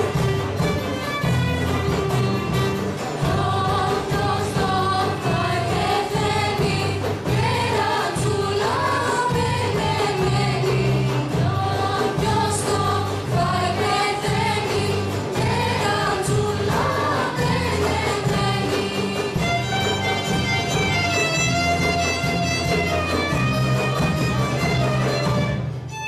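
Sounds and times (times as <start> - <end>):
frame drum beat: 0.0 - 25.9
strummed lutes: 0.0 - 26.0
group singing folk song: 2.4 - 25.5.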